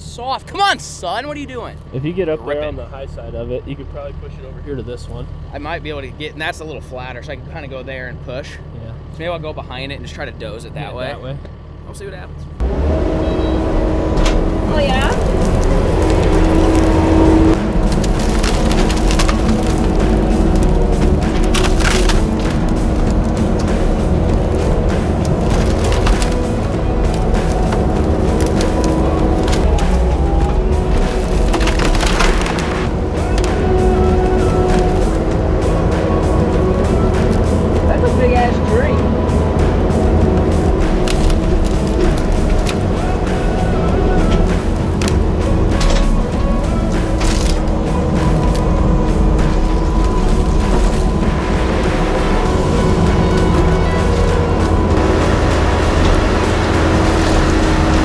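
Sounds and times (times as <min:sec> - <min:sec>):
diesel engine under load: 0:00.0 - 0:58.0
wood splintering: 0:12.6 - 0:38.1, 0:39.0 - 0:58.0
background music: 0:12.6 - 0:58.0.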